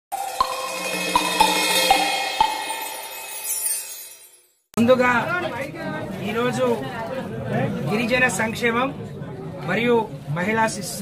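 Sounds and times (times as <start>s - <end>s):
electronic music: 0.1s - 4.4s
shimmering sustained tone: 0.1s - 4.4s
bell-like metallic hits: 0.1s - 4.6s.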